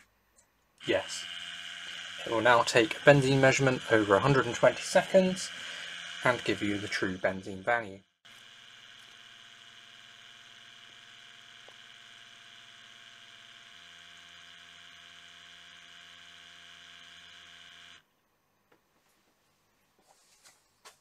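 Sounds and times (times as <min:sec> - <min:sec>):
gas monitor pump humming: 0:00.8 - 0:18.0.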